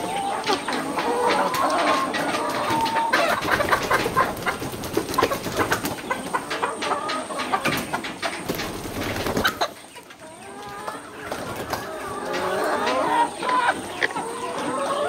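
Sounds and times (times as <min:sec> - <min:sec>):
chickens clucking: 0:00.0 - 0:15.0.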